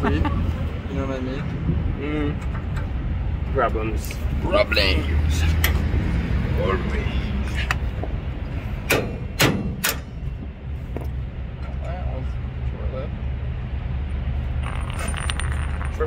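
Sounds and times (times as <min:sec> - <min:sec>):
steady low rumble: 0:00.0 - 0:16.0
hammer striking metal punch: 0:08.9 - 0:10.1.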